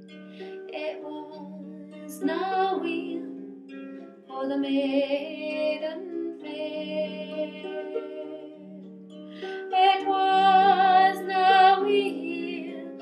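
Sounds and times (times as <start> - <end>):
plucked harp: 0.0 - 13.0
woman singing folk ballad: 0.6 - 3.5, 4.3 - 8.8, 9.4 - 13.0.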